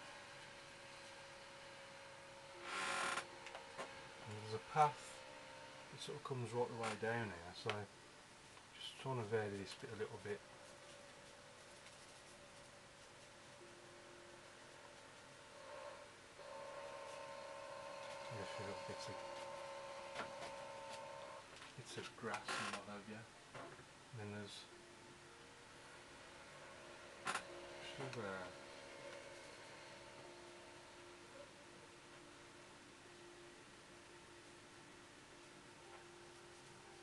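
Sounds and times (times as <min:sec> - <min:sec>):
faint steady hum: 0:00.0 - 0:37.0
low hiss: 0:00.0 - 0:37.0
brush swishing across paper: 0:09.5 - 0:13.6.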